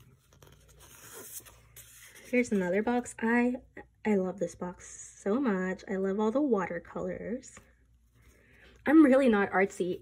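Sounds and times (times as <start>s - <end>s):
sticker sheets rustling: 0.0s - 3.1s.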